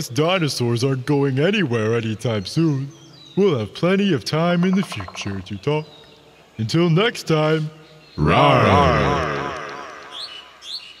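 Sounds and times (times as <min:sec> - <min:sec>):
high bird chirps: 0:04.5 - 0:06.6, 0:07.8 - 0:11.0
man's wavering mock roar: 0:08.2 - 0:10.6.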